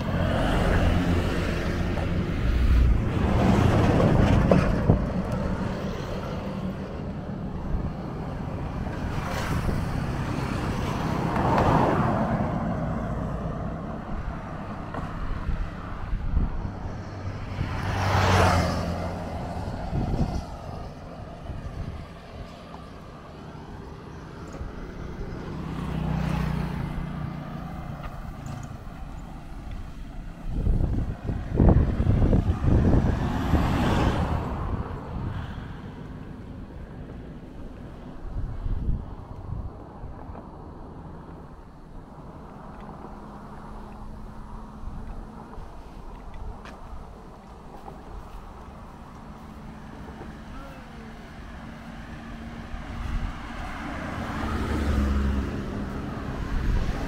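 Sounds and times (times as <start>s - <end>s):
motorcycles passing: 0.0s - 57.0s
van passing: 0.0s - 57.0s.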